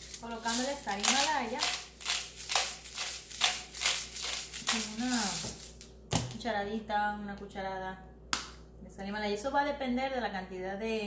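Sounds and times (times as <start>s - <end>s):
salt grinder crunching: 0.0s - 5.9s.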